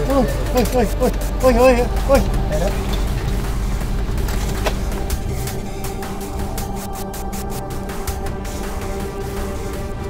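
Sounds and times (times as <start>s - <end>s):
faint music: 0.0s - 10.0s
vehicle engine rumble: 0.0s - 10.0s.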